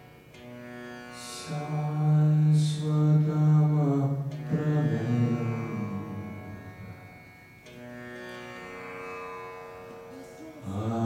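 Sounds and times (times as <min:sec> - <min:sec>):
indian classical music: 0:00.0 - 0:11.0
low voice chanting: 0:01.4 - 0:07.2, 0:10.1 - 0:11.0.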